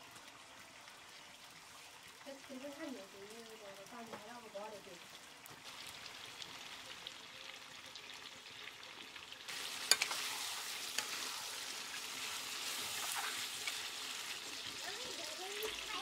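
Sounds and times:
meat and greens sizzling in a wok: 0:00.0 - 0:16.0
metal spatula scraping a pan: 0:09.5 - 0:14.4.

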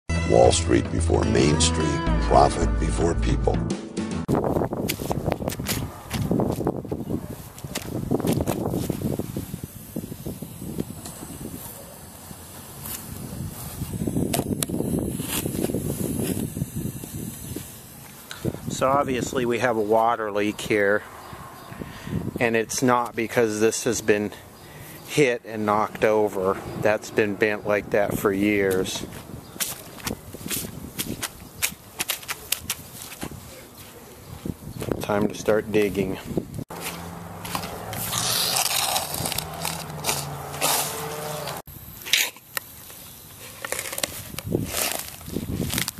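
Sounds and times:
footsteps on dry grass: 0:04.3 - 0:09.6, 0:12.5 - 0:16.7, 0:28.7 - 0:35.0, 0:36.2 - 0:41.6, 0:43.4 - 0:45.9
boot footsteps on wet grass: 0:36.7 - 0:38.1.

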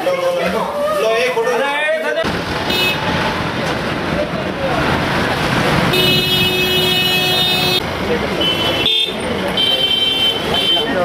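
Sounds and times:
people talking: 0:03.5 - 0:06.1, 0:07.8 - 0:11.0.

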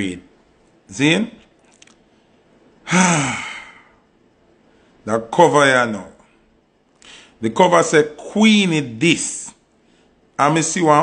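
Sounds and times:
man sighing: 0:02.8 - 0:04.0.

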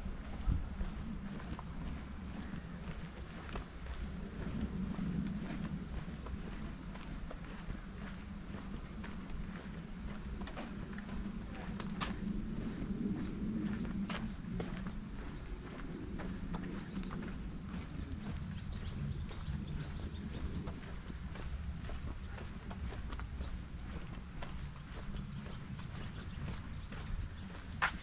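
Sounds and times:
steady low rumble: 0:00.0 - 0:28.0
footsteps on brick: 0:16.3 - 0:28.0.

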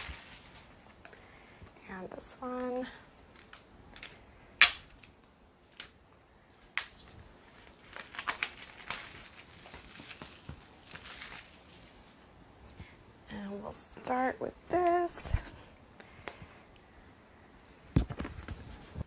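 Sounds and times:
plastic wrap crinkling: 0:00.0 - 0:01.1, 0:02.6 - 0:12.3
plastic wrap tearing with snaps: 0:03.3 - 0:11.8.

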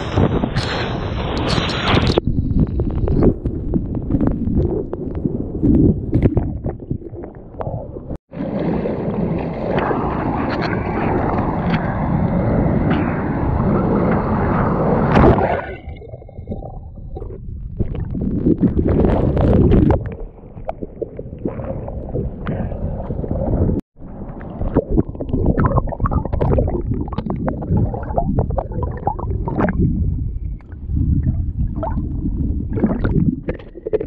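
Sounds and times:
bubbly crackles and pops: 0:00.0 - 0:12.0, 0:15.1 - 0:34.0
wind on microphone: 0:00.0 - 0:34.0
sea water sloshing and splashing: 0:15.1 - 0:29.9, 0:30.9 - 0:34.0.

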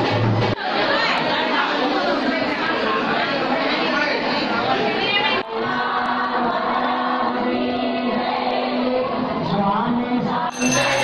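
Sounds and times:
crowd chatter in large hall: 0:00.0 - 0:11.0
held singing tones: 0:05.4 - 0:11.0.

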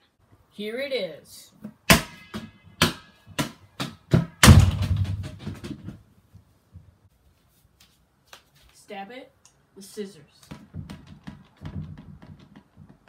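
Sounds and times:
ball bouncing on wooden floor: 0:01.6 - 0:06.0, 0:10.4 - 0:13.0.

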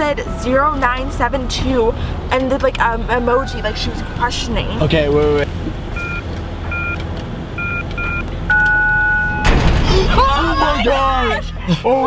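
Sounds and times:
car engine idling: 0:00.0 - 0:12.0
keypad beeps: 0:06.0 - 0:07.0, 0:07.6 - 0:09.4
long steady tone: 0:07.6 - 0:09.4.

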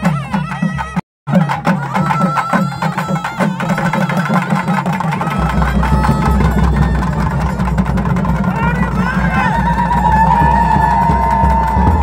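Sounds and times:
drumbeats: 0:00.0 - 0:12.0.

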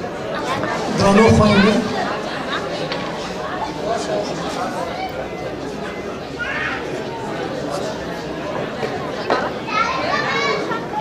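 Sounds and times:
background talk: 0:00.0 - 0:11.0
children calling out and chattering: 0:00.0 - 0:11.0.

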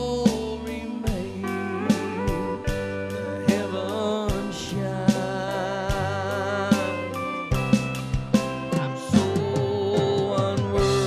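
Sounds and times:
bass guitar: 0:00.0 - 0:11.0
drums striking steadily: 0:00.0 - 0:11.0
pedal steel guitar gliding notes: 0:00.9 - 0:11.0.

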